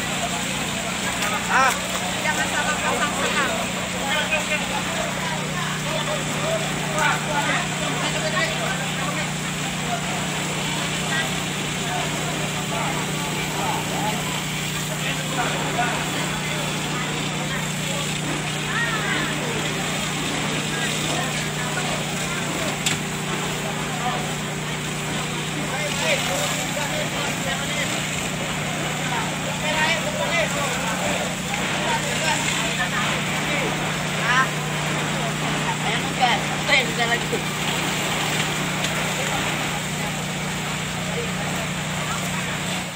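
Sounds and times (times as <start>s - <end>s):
crowd voices: 0.0s - 42.9s
pump engine droning: 0.0s - 42.9s
water jets hissing: 0.0s - 42.9s.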